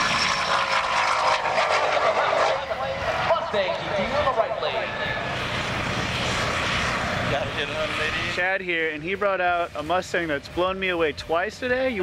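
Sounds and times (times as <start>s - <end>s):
distant car engine drone: 0.0s - 12.0s.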